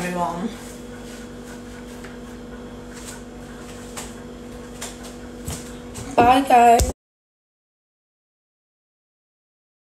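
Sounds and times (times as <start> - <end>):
steady low hum: 0.0 - 7.0.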